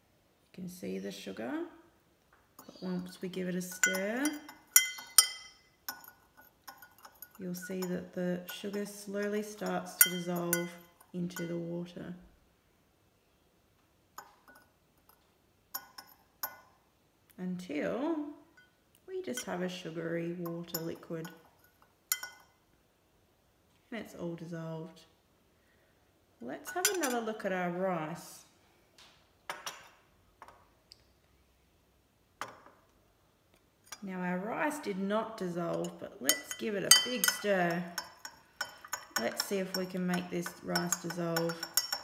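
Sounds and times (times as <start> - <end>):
teaspoon clinking against glass: 3.6 - 8.9, 9.5 - 11.6, 15.8 - 16.7, 20.7 - 22.5, 35.7 - 42.0.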